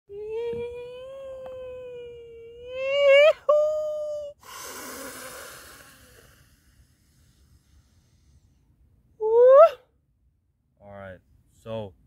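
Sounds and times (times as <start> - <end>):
breath blown through lips: 4.4 - 8.6.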